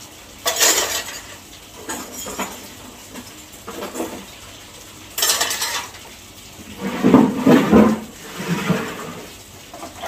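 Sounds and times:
water sloshing with plates: 0.4 - 4.3, 5.2 - 6.0, 6.6 - 10.0
tap running into tub: 5.2 - 10.0.

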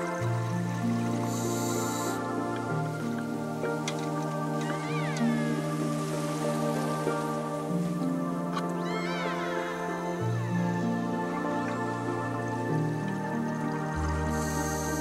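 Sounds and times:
high gliding cries: 0.0 - 15.0
slow music with held chords: 0.0 - 15.0.

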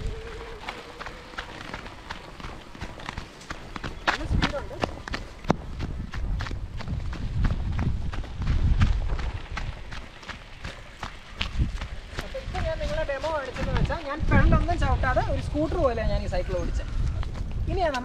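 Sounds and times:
crunching on gravel: 0.0 - 16.1
wind rumbling on microphone: 0.0 - 18.0.

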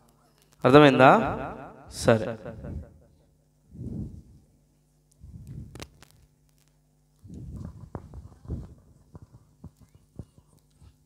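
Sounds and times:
faint low rumble: 3.7 - 11.0.

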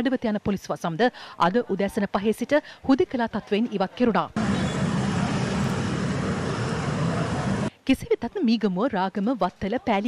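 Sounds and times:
street traffic passing: 4.4 - 7.7.

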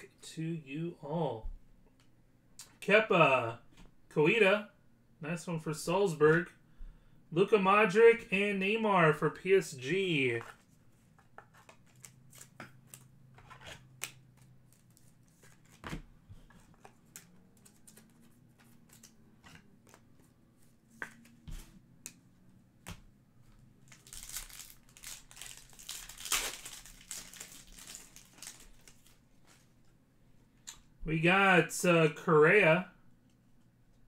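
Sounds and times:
cards clicking and tapping: 20.9 - 22.2
foil wrapper crinkling and tearing: 23.9 - 29.2.

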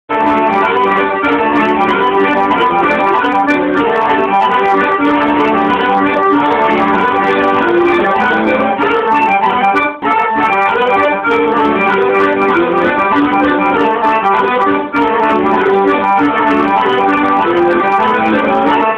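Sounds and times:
accordion duet: 0.1 - 18.9.

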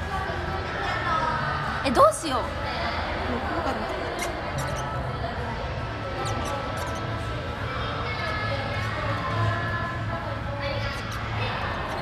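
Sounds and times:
marker pen squeaking on paper: 4.1 - 5.0, 6.2 - 7.2, 10.8 - 12.0.

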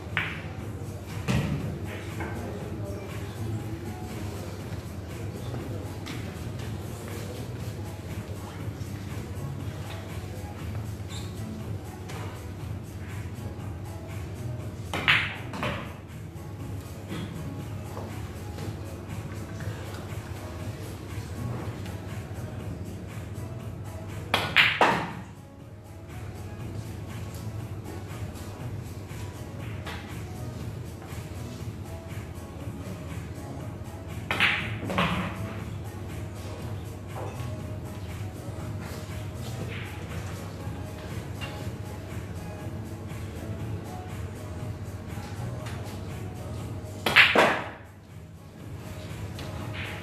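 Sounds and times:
pool balls clicking: 0.0 - 0.5, 14.8 - 16.0, 24.3 - 25.3, 34.2 - 35.7, 47.0 - 47.9
cue striking cue ball: 24.4 - 25.2, 47.0 - 47.8.

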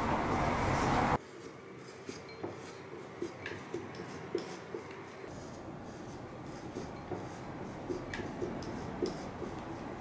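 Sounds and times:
metal tool scraping clay: 1.2 - 10.0.

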